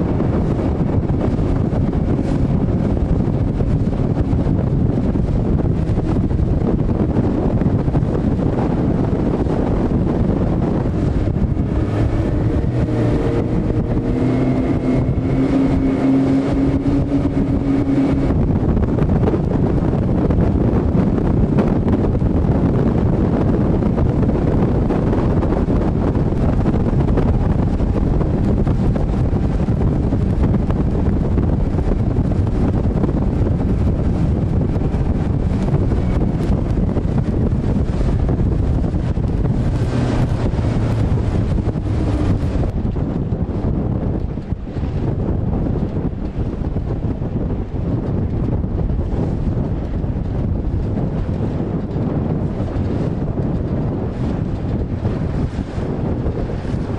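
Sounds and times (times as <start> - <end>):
motorboat engine hum: 0.0 - 56.9
wind buffeting microphone: 0.0 - 56.9.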